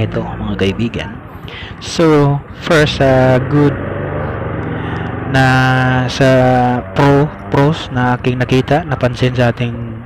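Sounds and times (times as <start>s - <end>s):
man's voice: 0.0s - 3.9s, 5.2s - 10.0s.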